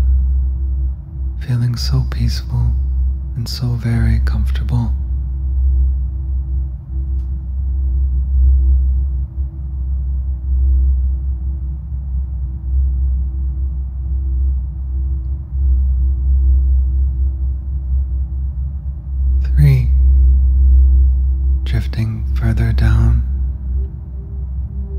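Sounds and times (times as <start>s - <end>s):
deep low rumble: 0.0s - 24.9s
steady thin tone: 0.0s - 24.9s.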